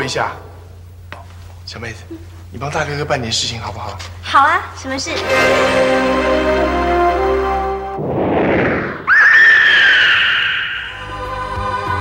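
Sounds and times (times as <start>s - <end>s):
music: 4.7s - 8.0s, 10.9s - 12.0s
whoosh sound effect: 8.0s - 9.1s
bird of prey screech: 9.1s - 11.0s.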